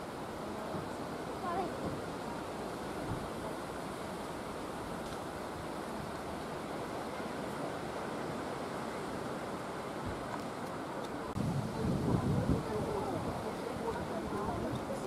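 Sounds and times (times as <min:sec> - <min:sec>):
wind noise on microphone: 0:09.8 - 0:15.0.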